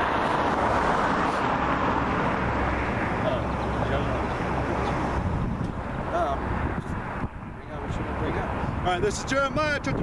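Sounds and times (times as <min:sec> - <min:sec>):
vehicle passing: 0:00.0 - 0:09.9.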